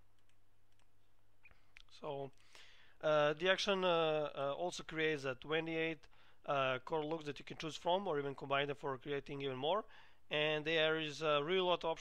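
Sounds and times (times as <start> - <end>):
computer mouse clicks: 0.2 - 0.9.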